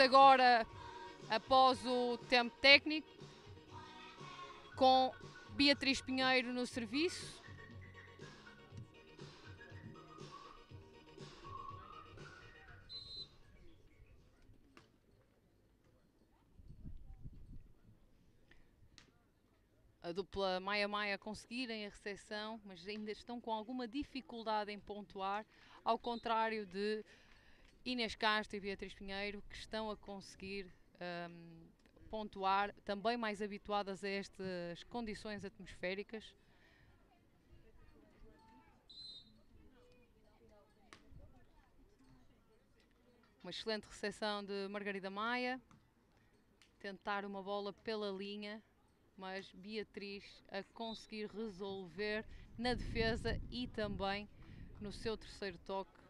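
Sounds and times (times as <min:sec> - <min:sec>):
faint background music: 0:00.0 - 0:56.0
referee's whistle blast: 0:12.8 - 0:13.4
low wind rumble: 0:52.2 - 0:55.2.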